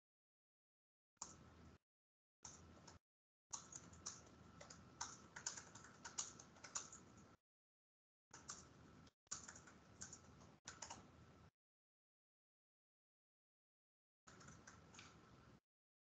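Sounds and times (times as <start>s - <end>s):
typing on computer keyboard: 2.5s - 7.3s, 8.4s - 11.1s, 14.3s - 15.2s.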